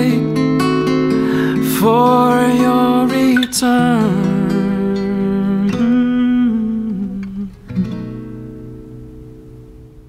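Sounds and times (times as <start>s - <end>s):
fingerpicked acoustic guitar: 0.0s - 10.0s
man humming a melody: 1.6s - 7.8s.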